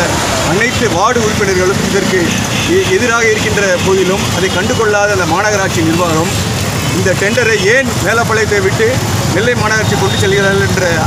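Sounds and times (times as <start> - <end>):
crowd background noise: 0.0 - 11.0
man speaking into microphones: 0.0 - 11.0.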